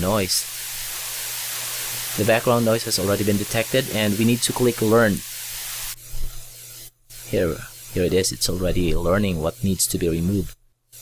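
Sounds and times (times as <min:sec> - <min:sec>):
static hiss: 0:00.0 - 0:11.0.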